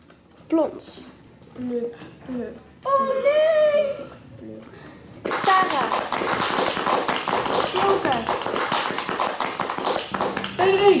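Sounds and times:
fast irregular tapping and clicking: 0:05.2 - 0:11.0.

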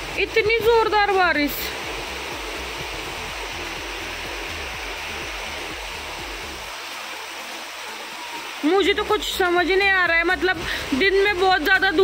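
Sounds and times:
heavy rain pouring: 0:00.0 - 0:12.0.

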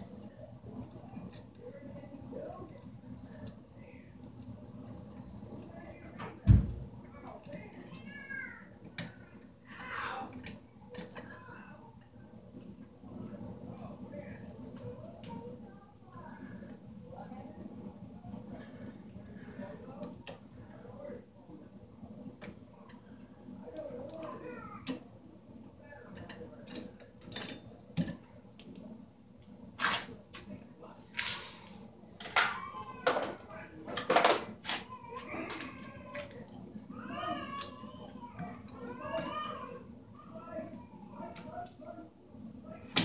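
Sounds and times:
wires scraping and rustling: 0:22.1 - 0:43.0.

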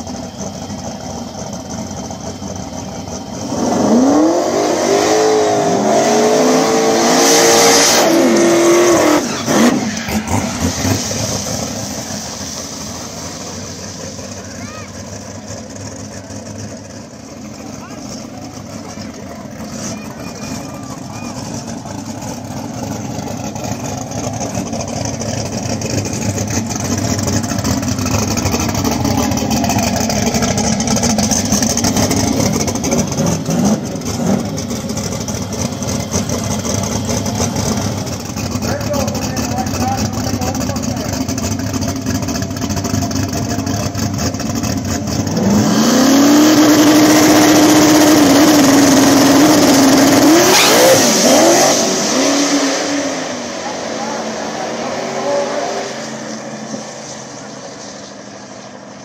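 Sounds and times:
race car engines idling and revving: 0:00.0 - 0:59.0.

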